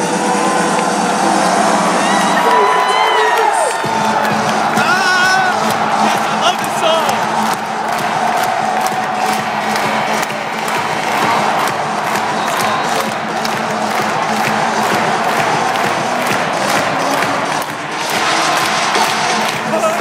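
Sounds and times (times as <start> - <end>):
crowd cheering and shouting: 0.0 - 20.0
music with a steady beat: 3.5 - 20.0.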